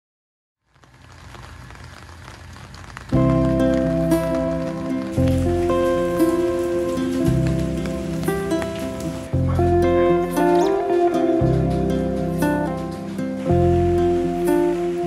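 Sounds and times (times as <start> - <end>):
steady rain: 0.6 - 15.0
background music with chords and bass: 3.2 - 15.0.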